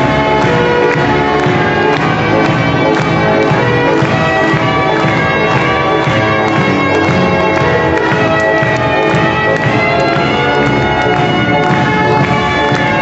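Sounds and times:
loud instrumental music: 0.0 - 13.0.

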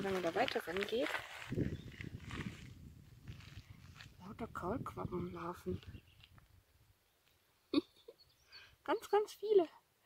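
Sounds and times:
footsteps on gravel: 0.0 - 4.6.

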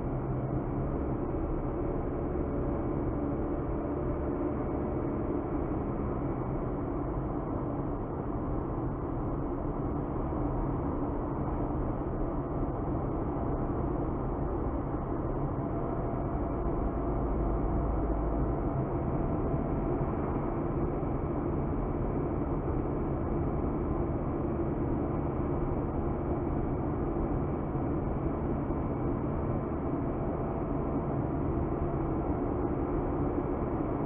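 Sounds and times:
car road and engine noise: 0.0 - 34.0.

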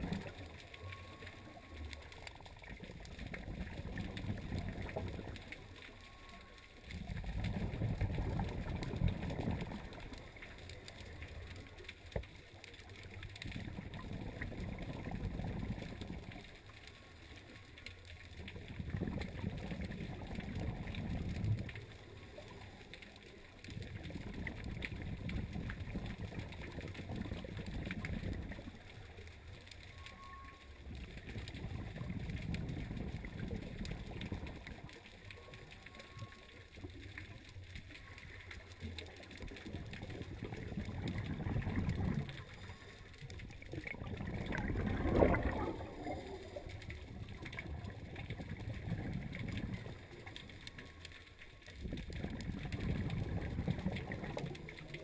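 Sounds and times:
underwater exhaled bubbles: 0.0 - 55.0.

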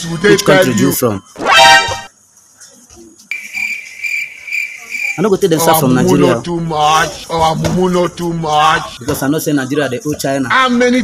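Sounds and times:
cricket chirping: 3.3 - 6.2.

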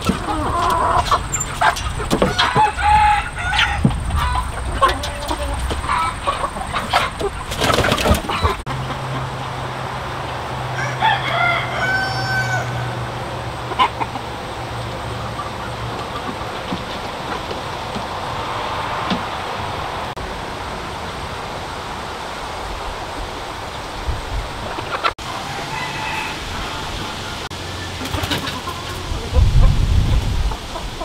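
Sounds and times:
chickens clucking: 0.0 - 31.0
rooster crowing: 2.2 - 4.4, 10.7 - 13.2, 25.2 - 27.2.

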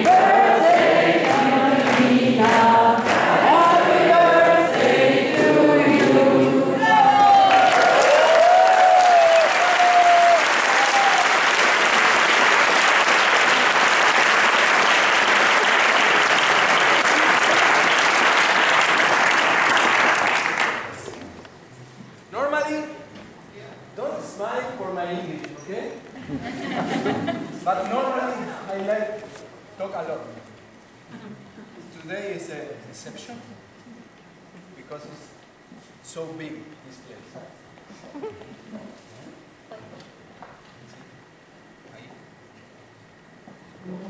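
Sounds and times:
audience clapping: 0.0 - 21.2.

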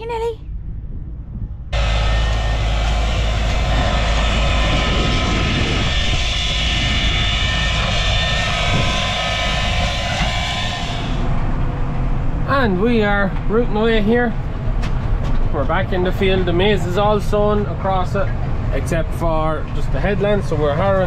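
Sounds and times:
tractor engine drone: 0.9 - 21.0
high mechanical whine: 1.4 - 21.0.

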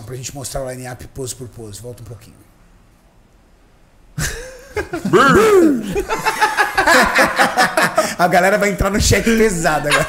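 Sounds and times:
men chuckling and laughing: 4.2 - 8.2, 9.6 - 10.0
men muttering: 5.0 - 6.2.

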